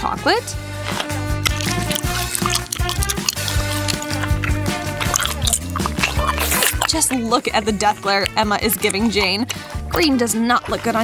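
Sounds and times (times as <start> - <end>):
background music with bass line: 0.0 - 11.0
wet drippy sound effects: 1.4 - 11.0.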